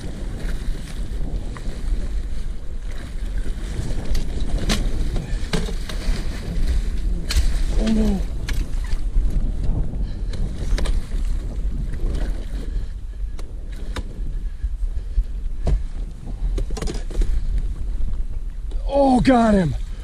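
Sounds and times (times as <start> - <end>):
wind rumbling on microphone: 0.0 - 20.0.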